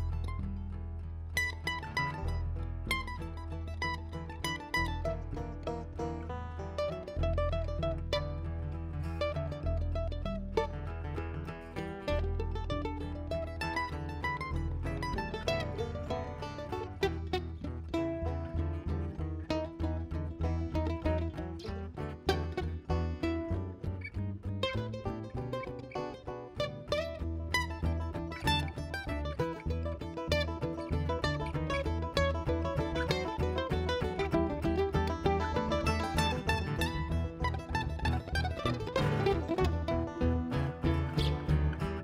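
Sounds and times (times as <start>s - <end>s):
acoustic guitar: 0.0s - 42.0s
mandolin picking: 0.0s - 42.0s
upright bass: 0.0s - 42.0s.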